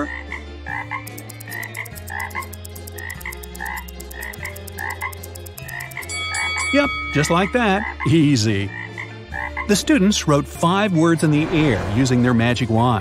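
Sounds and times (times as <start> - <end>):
cartoon frog croaking: 0.0 - 6.1
fast even ticking: 1.0 - 6.5.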